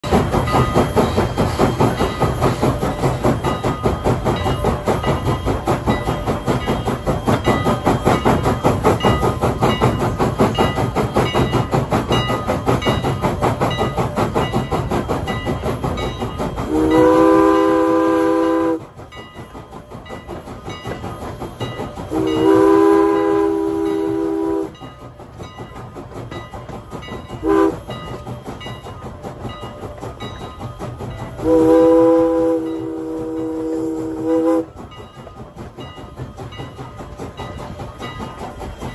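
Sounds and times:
steam locomotive chuffing: 0.0s - 38.9s
steam whistle blasts: 16.6s - 18.9s, 22.1s - 24.8s, 27.4s - 27.9s, 31.4s - 34.8s.

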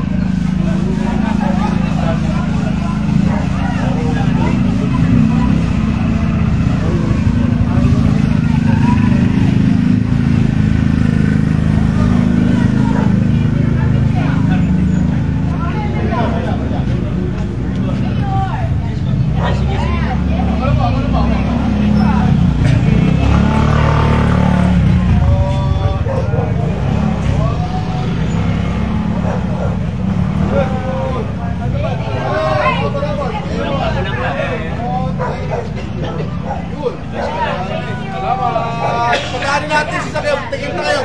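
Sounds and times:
crowd talking: 0.0s - 41.0s
motorcycle engine rumble: 0.0s - 41.0s.

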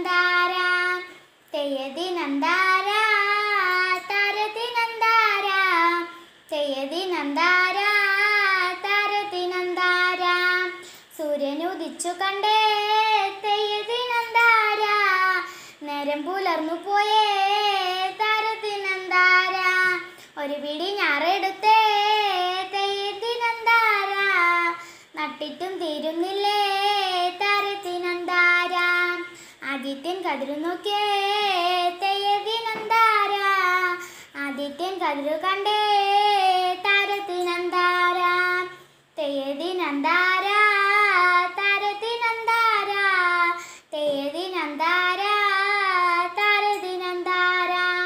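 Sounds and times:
person singing unaccompanied: 0.0s - 48.0s.

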